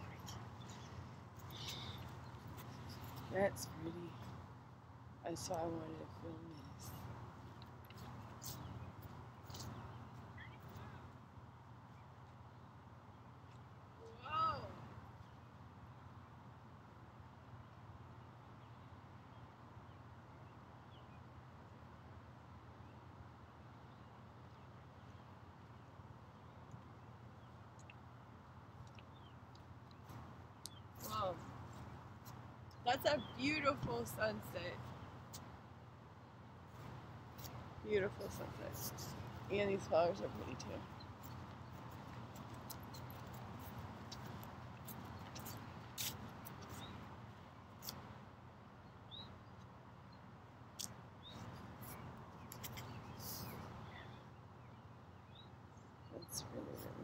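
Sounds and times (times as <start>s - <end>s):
faint high bird chirps: 0.0s - 3.8s.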